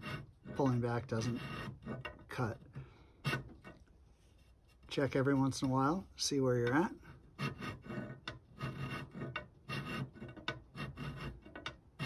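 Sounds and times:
file rasping on metal: 0.0 - 3.8, 6.6 - 12.0.

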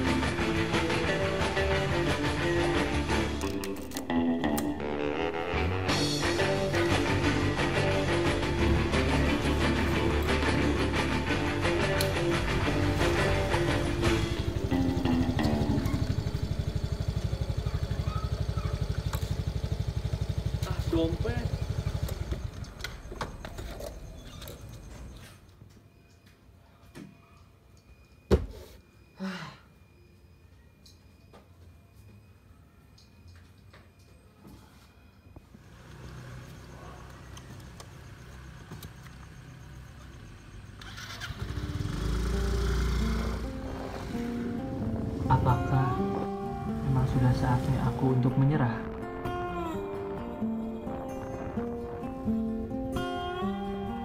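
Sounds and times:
music: 0.0 - 17.9, 26.0 - 35.4, 40.8 - 54.0
scooter engine idling: 12.4 - 24.8, 35.6 - 51.5.

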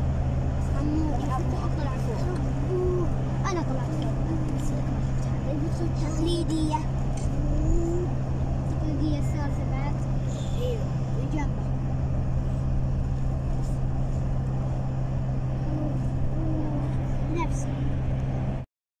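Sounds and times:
vehicle engine and road drone: 0.0 - 18.7.

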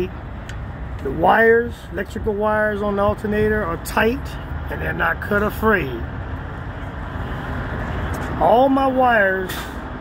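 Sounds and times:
heavy vehicle rumble: 0.0 - 10.0.

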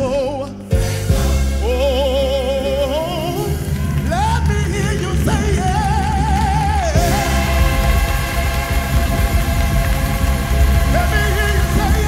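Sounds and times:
gospel band chords over bass: 0.0 - 12.0
voice singing: 1.6 - 12.0.

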